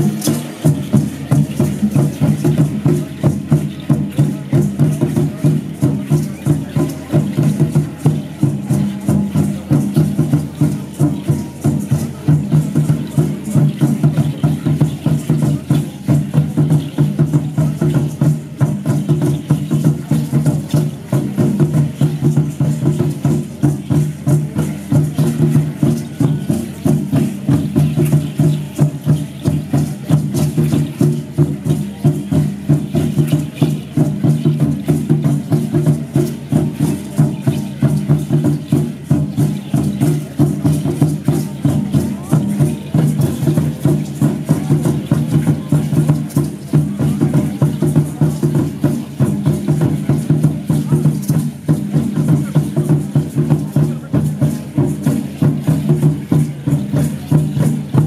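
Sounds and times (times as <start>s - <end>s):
fast steady drum beat: 0.0s - 58.0s
shaken rattles clattering: 0.0s - 58.0s.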